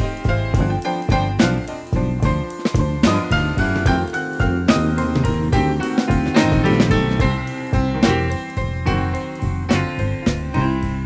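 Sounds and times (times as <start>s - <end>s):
drum hits: 0.0s - 11.0s
electric blues band instrumental: 0.0s - 11.0s.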